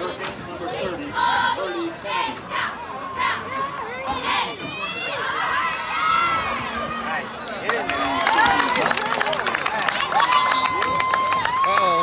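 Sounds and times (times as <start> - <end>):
crowd cheering: 4.9 - 12.0.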